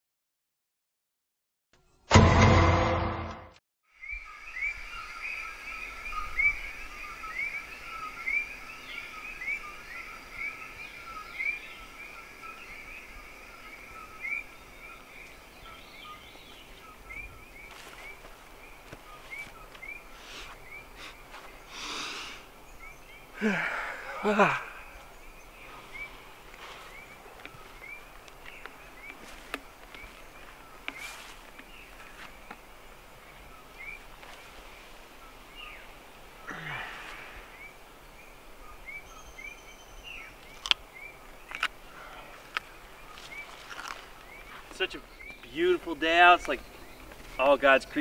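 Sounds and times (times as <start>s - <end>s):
bird chirping: 3.9s - 34.5s, 35.2s - 48.0s.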